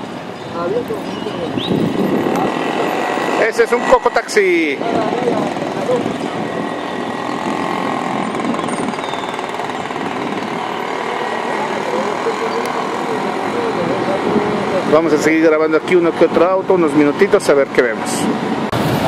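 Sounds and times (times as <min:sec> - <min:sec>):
traffic noise: 0:00.0 - 0:19.0
indistinct voices: 0:00.5 - 0:17.3.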